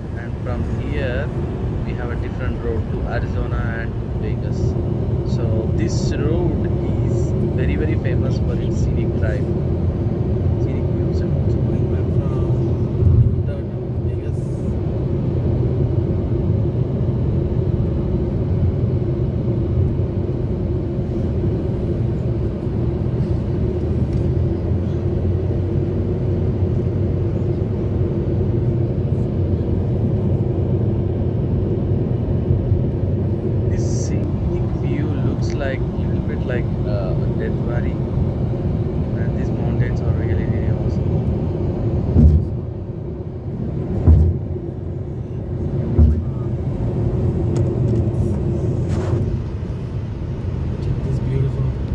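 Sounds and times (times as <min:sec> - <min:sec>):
road and engine rumble in car: 0:00.0 - 0:51.9
thump: 0:42.2 - 0:42.5, 0:44.1 - 0:44.4.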